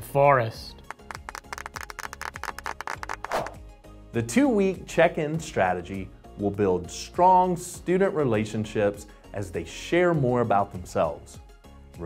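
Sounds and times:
soft background music: 0:00.0 - 0:12.0
small group clapping: 0:00.8 - 0:03.6.

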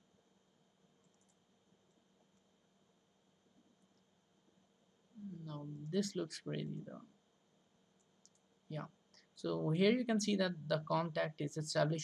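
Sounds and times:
computer mouse clicks: 0:01.0 - 0:02.5, 0:07.9 - 0:08.5.

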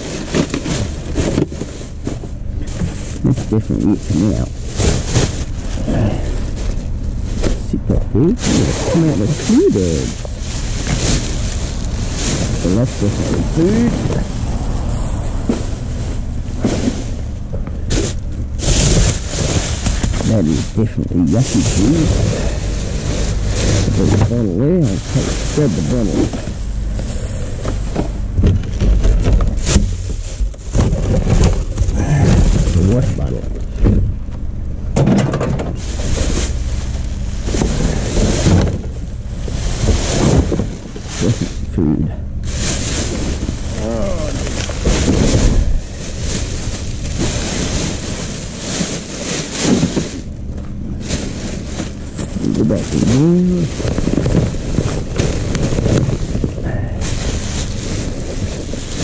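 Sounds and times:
plastic bags rustling: 0:00.0 - 0:34.7, 0:35.7 - 0:59.0
microphone handling rumble: 0:00.0 - 0:59.0
knocks on bins: 0:34.9 - 0:35.9.

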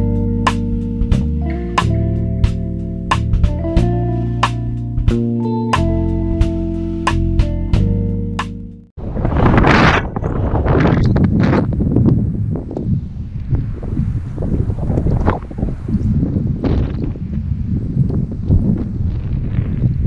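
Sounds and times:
gusty wind on microphone: 0:09.0 - 0:20.0.

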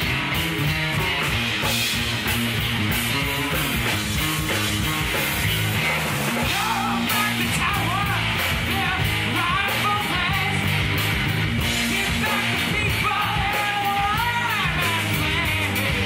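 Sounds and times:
bass guitar: 0:00.0 - 0:16.0
drum kit: 0:00.0 - 0:16.0
electric guitars: 0:00.0 - 0:16.0.

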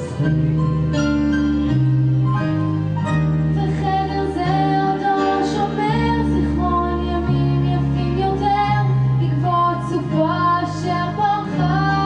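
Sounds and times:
instrumental accompaniment: 0:00.0 - 0:12.0
woman singing into microphone: 0:03.6 - 0:12.0.

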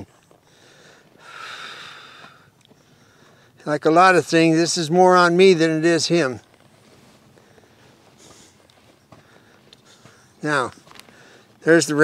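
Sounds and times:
breathy exhale: 0:00.4 - 0:03.6.

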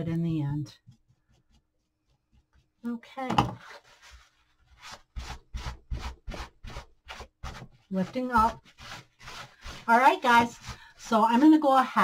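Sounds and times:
paper towel wiping wood: 0:03.8 - 0:11.8.

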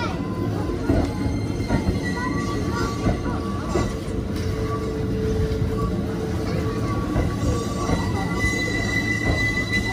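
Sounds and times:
train wheels on rails: 0:00.0 - 0:09.9.

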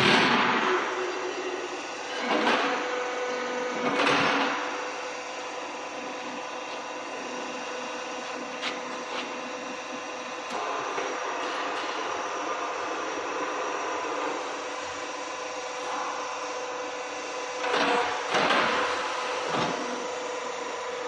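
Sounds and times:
electric motors humming: 0:00.0 - 0:21.0.

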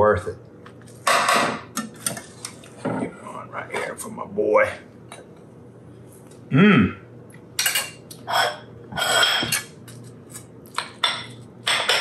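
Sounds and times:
low steady hum: 0:00.0 - 0:12.0
plates clattering: 0:07.6 - 0:09.8, 0:10.8 - 0:12.0.

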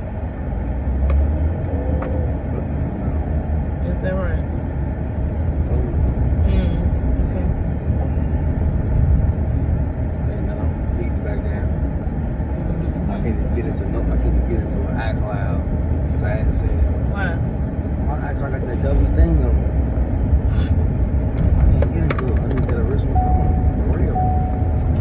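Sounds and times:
road and engine rumble in car: 0:00.0 - 0:25.0
faint talking: 0:12.6 - 0:16.8.

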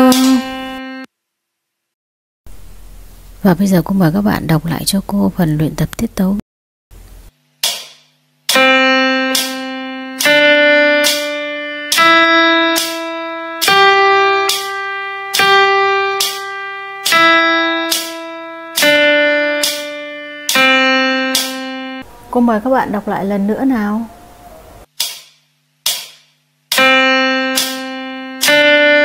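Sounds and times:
plucked guitar-like instrument notes: 0:00.0 - 0:01.0, 0:08.5 - 0:22.0.

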